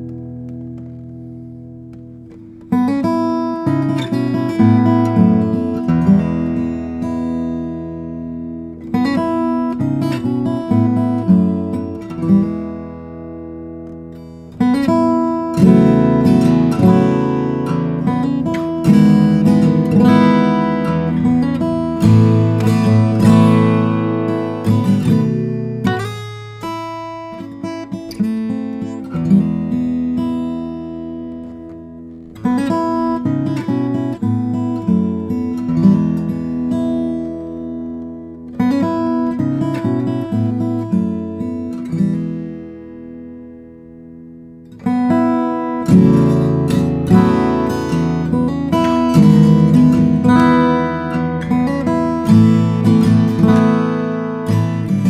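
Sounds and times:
fingerpicked acoustic guitar: 0:00.0 - 0:55.0.

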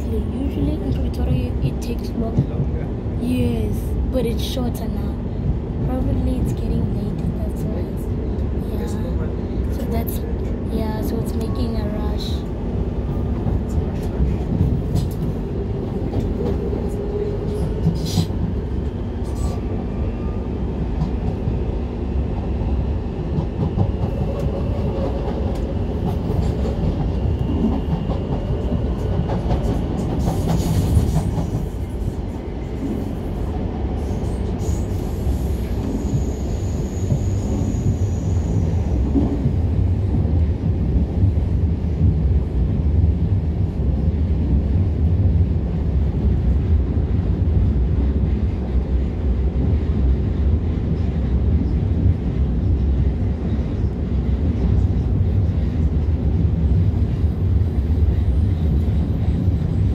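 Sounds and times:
train low rumble: 0:00.0 - 0:59.9.

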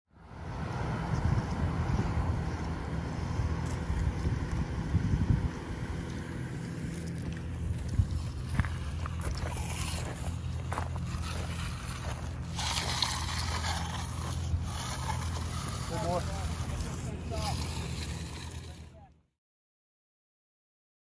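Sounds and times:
motor humming: 0:00.2 - 0:19.1
light knocks and scrapes: 0:06.0 - 0:19.0.

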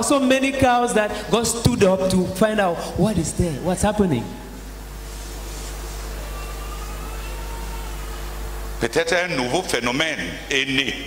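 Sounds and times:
low electrical hum and hiss: 0:00.0 - 0:11.0.

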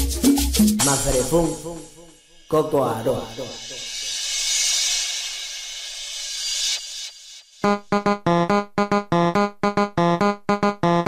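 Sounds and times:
white noise sweep: 0:03.3 - 0:07.6.

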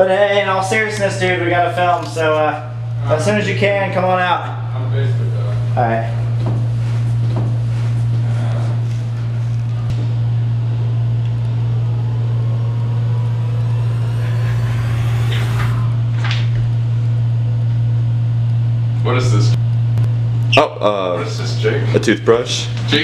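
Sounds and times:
steady low hum: 0:06.2 - 0:19.0.

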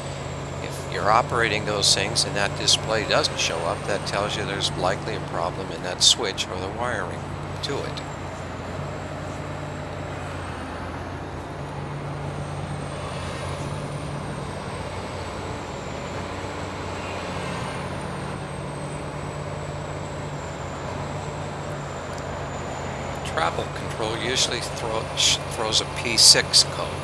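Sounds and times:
thin high-pitched whine: 0:00.0 - 0:10.6
excavator diesel engine running: 0:00.0 - 0:27.0.

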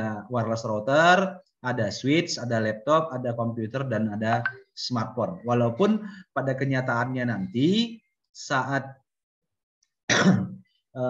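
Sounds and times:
man clearing his throat: 0:10.1 - 0:10.7.

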